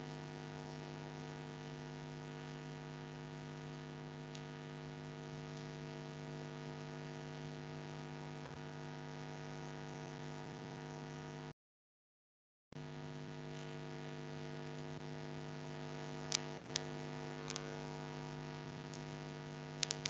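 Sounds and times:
electrical mains hum: 0:00.0 - 0:11.5, 0:12.8 - 0:20.0.

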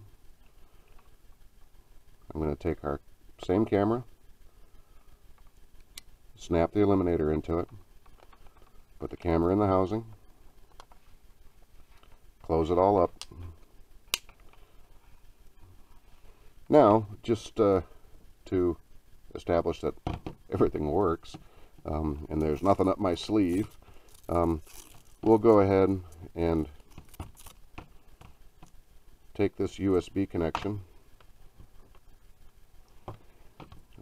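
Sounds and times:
cable rustle: 0:22.3 - 0:28.8.

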